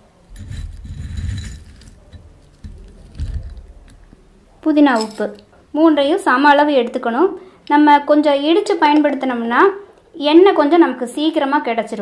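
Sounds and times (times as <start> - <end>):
glass bottle handling rustle: 0.3 - 4.2.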